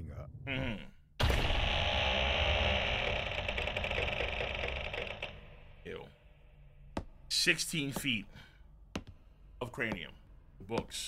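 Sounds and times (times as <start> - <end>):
ticking mechanical clatter: 2.5 - 5.8.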